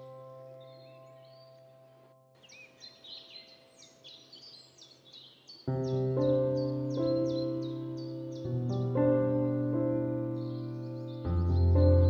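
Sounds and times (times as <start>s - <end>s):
piano chord: 0.0s - 2.3s, 5.7s - 12.0s
birds chirping: 0.0s - 12.0s.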